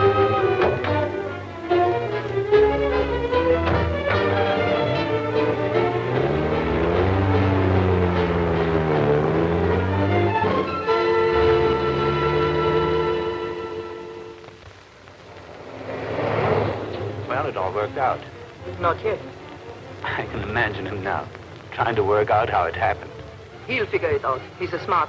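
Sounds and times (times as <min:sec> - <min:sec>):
orchestral strings score: 0:00.0 - 0:25.0
rush of noise: 0:15.0 - 0:18.4.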